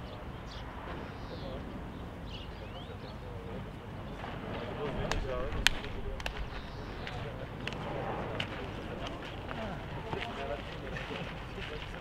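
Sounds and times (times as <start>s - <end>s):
players talking and calling: 0.0s - 12.0s.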